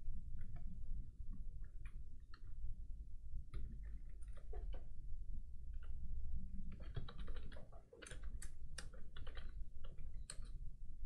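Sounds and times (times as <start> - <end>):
computer keyboard typing: 6.7 - 10.6.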